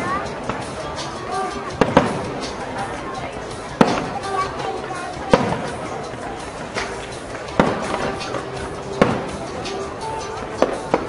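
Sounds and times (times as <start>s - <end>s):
onlookers' voices: 0.0s - 11.0s
firework shells bursting: 6.7s - 8.4s, 9.0s - 10.0s.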